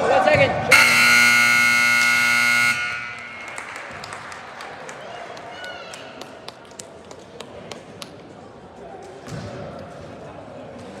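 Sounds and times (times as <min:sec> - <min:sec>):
scoreboard buzzer blast: 0:00.7 - 0:03.8.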